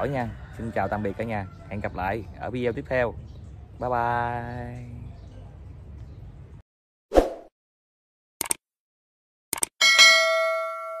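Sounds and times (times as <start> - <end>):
notification bell ding: 9.8 - 11.0.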